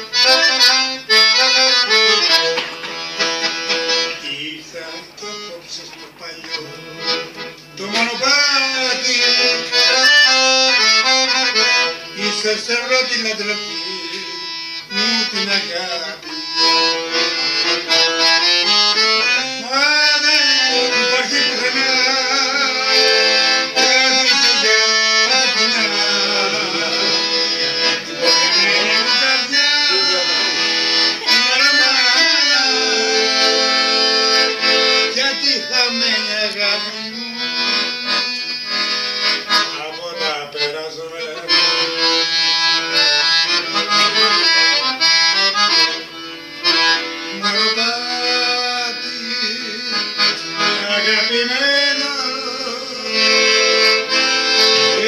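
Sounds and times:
piano accordion playing: 0.0 - 55.0
man singing: 4.0 - 18.2, 19.2 - 38.3, 39.6 - 42.2, 47.2 - 55.0.

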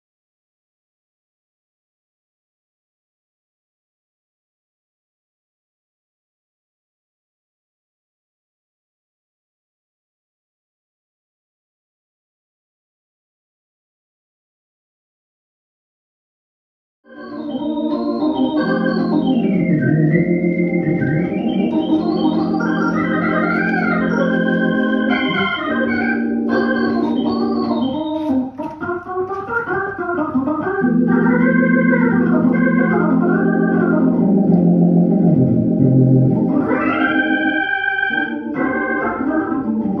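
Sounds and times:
organ chords and melody: 17.1 - 40.0.

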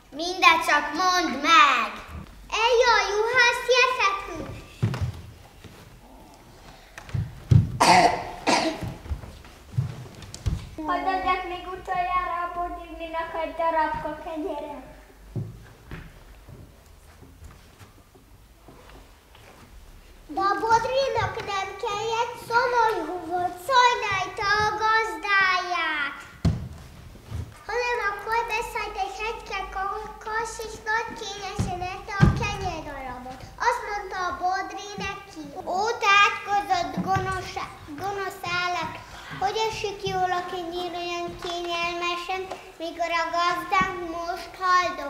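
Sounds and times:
person coughing: 7.8 - 8.9.

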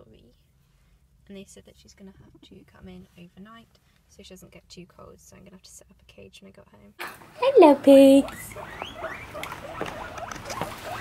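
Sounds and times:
guinea pigs squeaking: 8.0 - 11.0.

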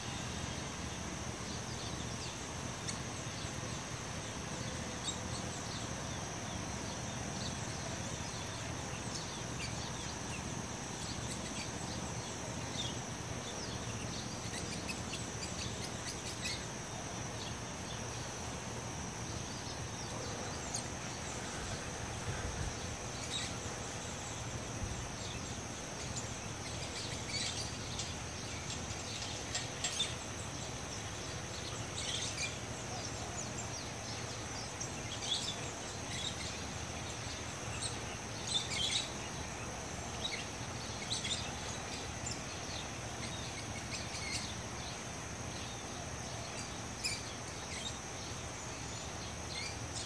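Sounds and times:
high-pitched insect chorus: 0.0 - 50.0.

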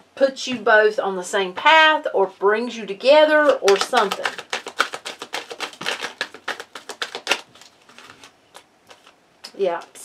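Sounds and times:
cards being shuffled by hand: 3.4 - 10.0.

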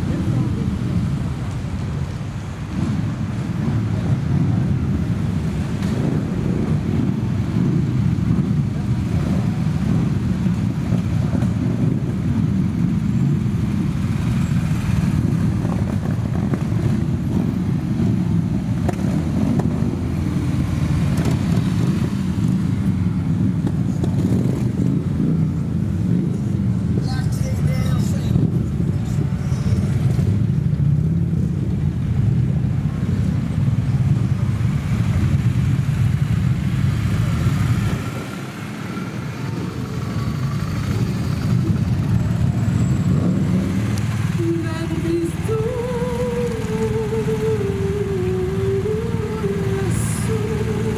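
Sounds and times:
motorcycle and car engines rumbling: 0.0 - 50.9.

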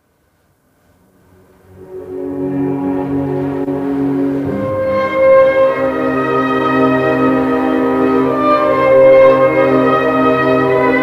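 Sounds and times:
cello and strings sustained bowed notes: 1.2 - 11.0.

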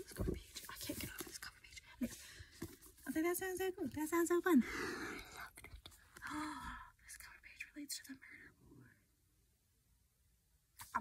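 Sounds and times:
woman's voice: 3.0 - 4.8.

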